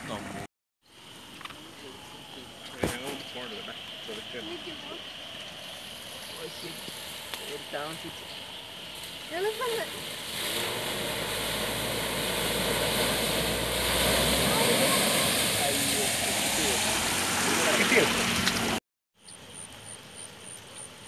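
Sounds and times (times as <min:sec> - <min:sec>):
water spray and tyre noise: 0:00.0 - 0:18.8
car engine hum: 0:06.2 - 0:18.8.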